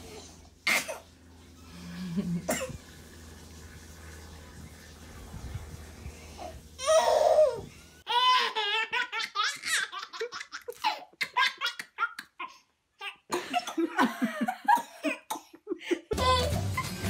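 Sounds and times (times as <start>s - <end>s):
low steady hum: 0.0s - 8.7s
woman and baby laughing: 8.1s - 12.6s.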